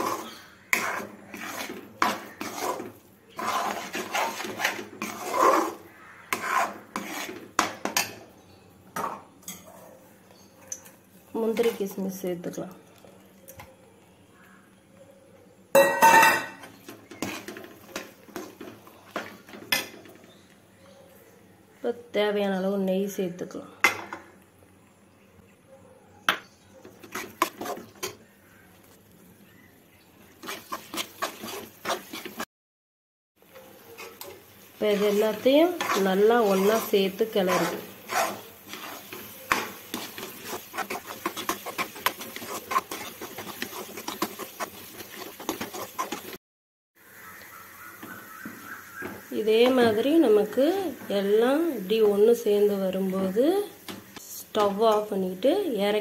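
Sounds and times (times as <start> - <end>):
spoon scraping and stirring in pan: 0.0 - 12.2, 15.8 - 20.6, 26.4 - 29.4, 30.2 - 32.5, 33.4 - 46.4.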